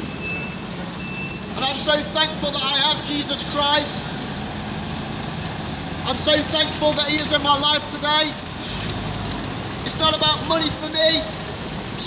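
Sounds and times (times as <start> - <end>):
bus engine idling: 0.0 - 12.0
wet city street noise: 0.0 - 12.0.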